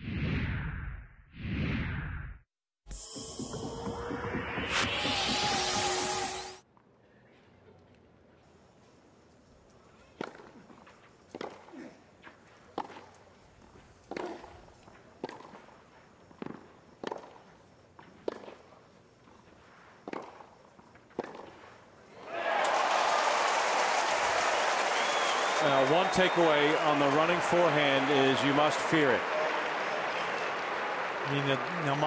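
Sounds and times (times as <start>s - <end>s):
crowd cheering and applause: 3.2s - 6.6s, 22.2s - 32.0s
racket striking tennis ball: 14.1s - 14.5s, 20.0s - 20.4s, 21.2s - 21.6s.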